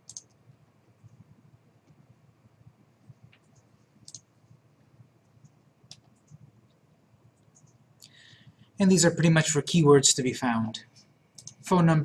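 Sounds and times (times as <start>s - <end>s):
computer mouse click: 0.0s - 0.4s, 3.2s - 4.3s, 5.4s - 6.8s, 7.4s - 8.2s, 11.4s - 11.6s.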